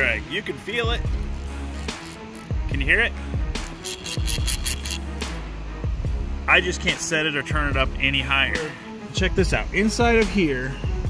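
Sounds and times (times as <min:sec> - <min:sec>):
fishing reel clicking: 0:01.2 - 0:02.6, 0:03.6 - 0:05.0
music with deep bass beat: 0:09.2 - 0:11.0.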